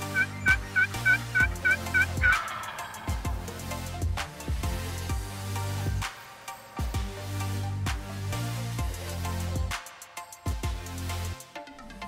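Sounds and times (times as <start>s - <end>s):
turkey yelping: 0.0s - 3.4s
electronic music with heavy bass: 0.0s - 12.0s.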